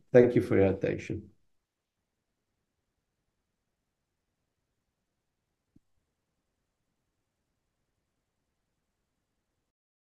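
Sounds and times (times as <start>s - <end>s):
faint steady background hiss: 0.0s - 9.7s.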